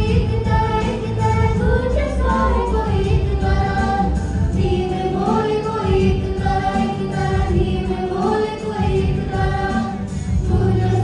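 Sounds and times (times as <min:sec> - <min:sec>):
steady low notes: 0:00.0 - 0:11.0
woman and girls singing together: 0:00.0 - 0:11.0.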